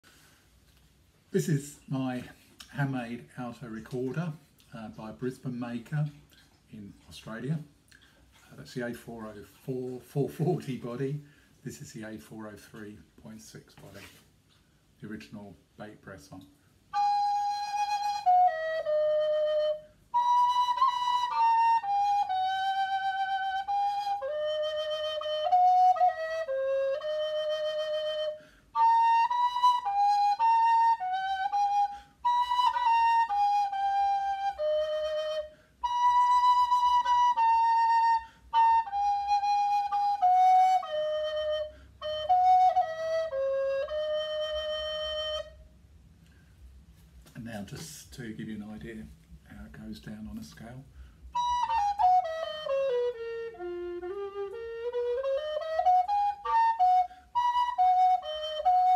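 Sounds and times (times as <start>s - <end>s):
recorder melody: 16.9s - 45.7s, 51.3s - 58.9s.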